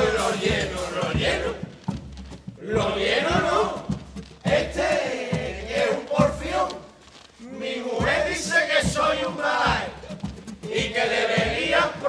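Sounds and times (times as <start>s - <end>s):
men's chorus shout-singing: 0.0s - 1.7s, 2.6s - 6.8s, 7.4s - 12.0s.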